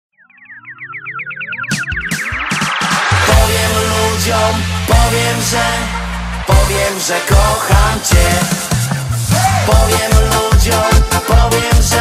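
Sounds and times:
falling synth chirps: 0.1 - 9.2
rising synth sweeps: 0.1 - 9.4
drum beat: 1.9 - 4.3, 4.9 - 12.0.

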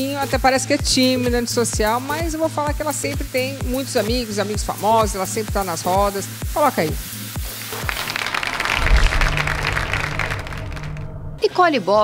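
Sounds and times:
rapid rattling sound effect: 7.7 - 11.3.

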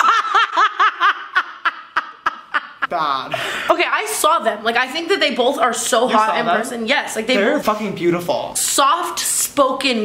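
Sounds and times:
woman laughing hard: 0.0 - 2.9.

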